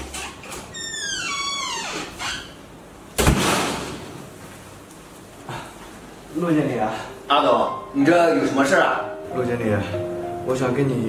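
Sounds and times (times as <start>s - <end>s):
door hinges squeaking: 0.0s - 2.8s.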